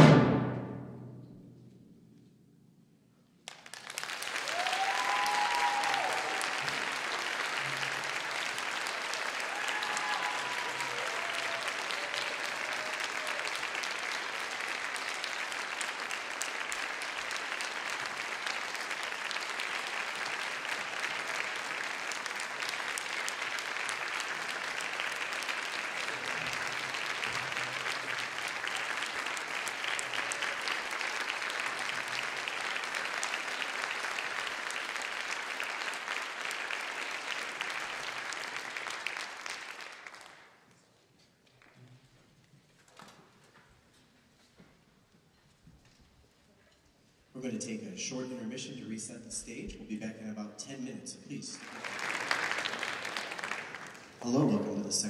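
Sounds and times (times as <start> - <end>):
audience applauding: 3.4 - 40.8, 51.5 - 54.8
short cheers: 4.3 - 6.9, 8.8 - 13.9.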